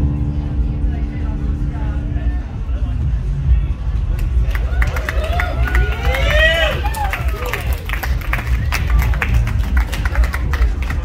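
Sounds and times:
crowd talking: 0.0 - 11.0
keyboard music with pulsing bass: 0.0 - 11.0.

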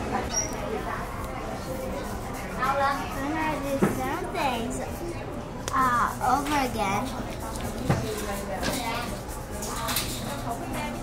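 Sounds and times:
murmur of voices: 0.0 - 11.0
brief high squeak: 0.3 - 0.6.

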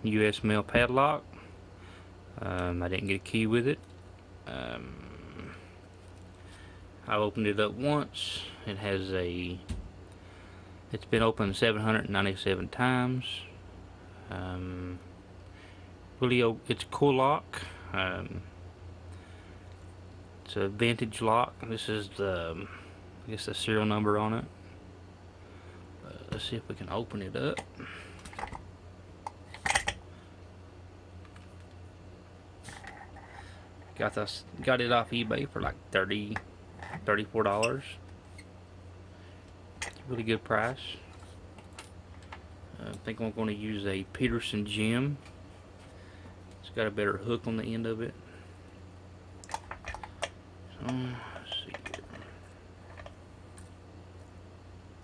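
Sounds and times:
metal handling clicks and clatter: 29.3 - 30.0.

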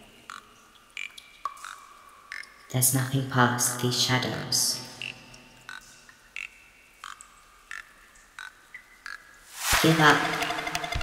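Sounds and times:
ambient electronic music: 8.4 - 11.0.

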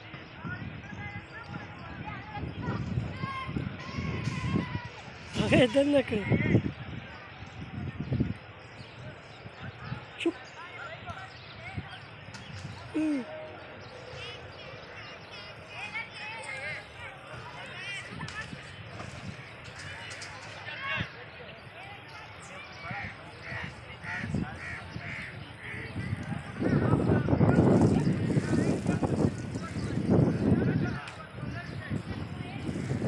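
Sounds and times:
faint distant voices: 0.0 - 33.0
small birds chirping: 0.0 - 33.0
bird harsh calls: 22.4 - 27.1.

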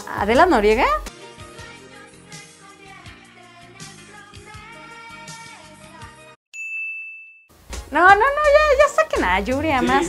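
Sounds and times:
soft music: 0.0 - 6.4, 7.5 - 10.0
high steady ding tone: 6.6 - 7.5.

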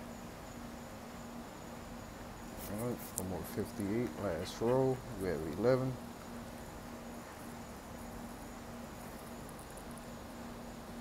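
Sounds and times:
low hum and hiss: 0.0 - 11.0
man talking: 2.6 - 6.0.

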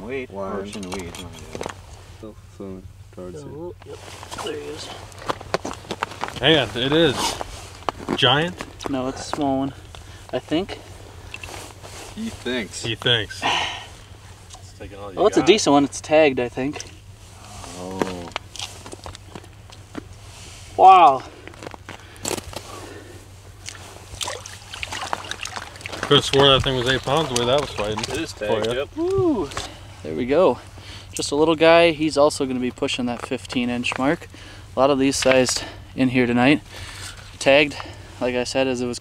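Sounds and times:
steady low hum: 0.0 - 39.0
man saying wow: 28.4 - 29.6.

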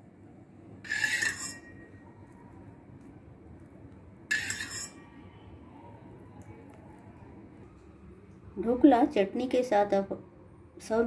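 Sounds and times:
steel spoon clinking on steel pan: 0.9 - 1.9, 4.3 - 5.1.

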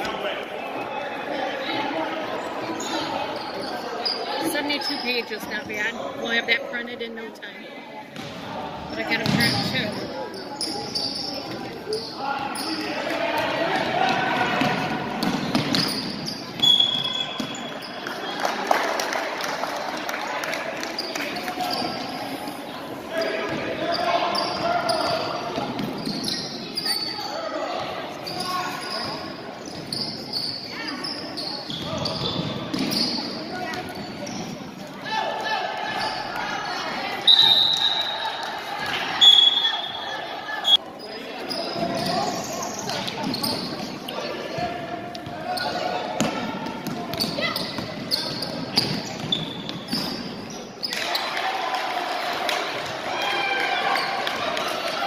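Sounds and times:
basketball bouncing on court: 9.0 - 9.9, 13.7 - 17.6, 31.7 - 34.1, 46.2 - 50.2
referee's whistle blasts: 16.6 - 17.7, 37.2 - 38.2, 39.2 - 40.8.

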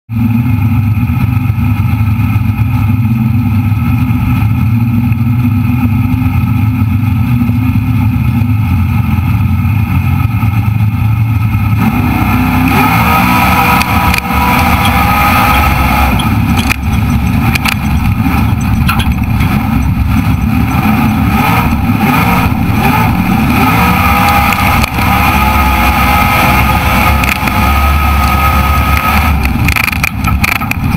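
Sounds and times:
race car engine revving: 0.1 - 30.9
loud rushing noise: 11.4 - 30.9.

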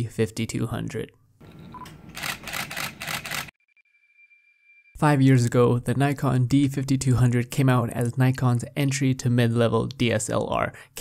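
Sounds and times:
camera shutter burst: 2.1 - 3.5.

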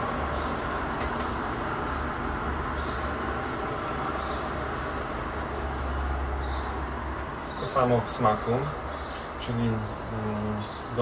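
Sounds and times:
outdoor background rumble: 0.0 - 11.0.

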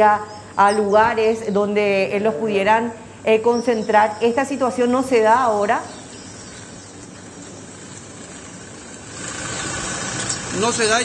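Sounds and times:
low background hiss: 0.0 - 9.2.

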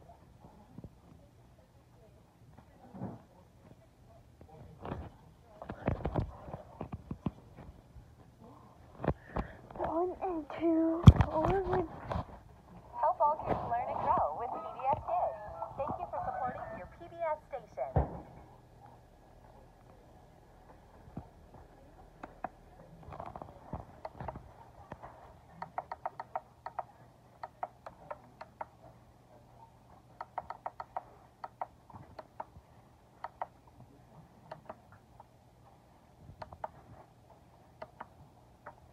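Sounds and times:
faint low hum: 0.0 - 38.9.

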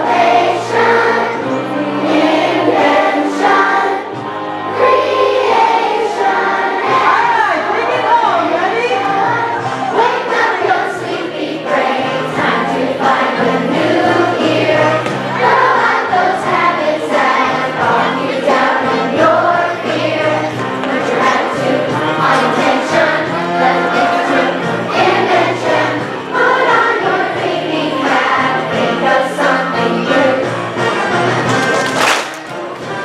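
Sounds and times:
children singing together: 0.0 - 7.4, 9.0 - 31.1
backing track music: 0.0 - 33.0.

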